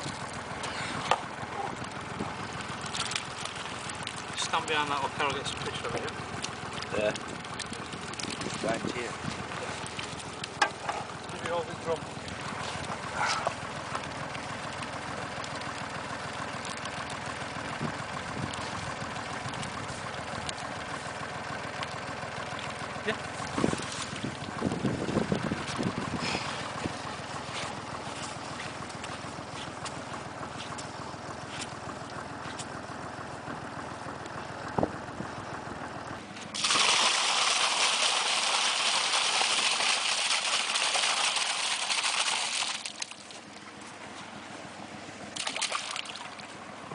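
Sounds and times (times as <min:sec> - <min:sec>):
water pouring and splashing: 0:00.0 - 0:01.2, 0:02.0 - 0:11.5, 0:23.4 - 0:25.9, 0:36.5 - 0:43.6, 0:45.4 - 0:46.6.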